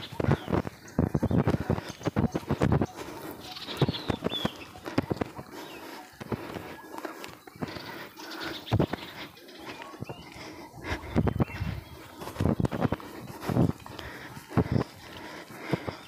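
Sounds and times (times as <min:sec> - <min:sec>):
footsteps crunching on leaves: 0:01.6 - 0:10.4.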